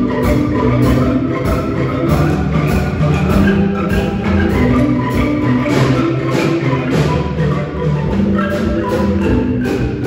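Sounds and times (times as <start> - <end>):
marimba ensemble playing: 0.0 - 10.0.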